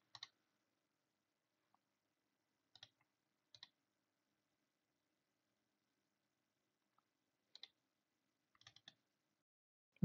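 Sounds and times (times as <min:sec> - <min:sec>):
computer mouse clicks: 0:00.0 - 0:00.4, 0:02.7 - 0:03.8, 0:07.5 - 0:07.8, 0:08.6 - 0:09.0.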